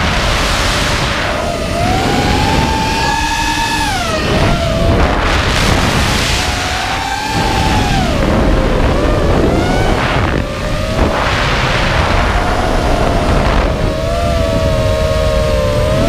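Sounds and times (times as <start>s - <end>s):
quadcopter motors whining: 0.0s - 16.0s
wind noise: 0.0s - 16.0s.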